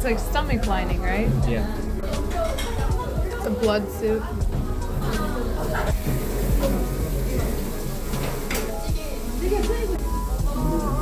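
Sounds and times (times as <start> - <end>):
indistinct chatter of diners: 0.0 - 11.0
soft background music: 0.0 - 11.0.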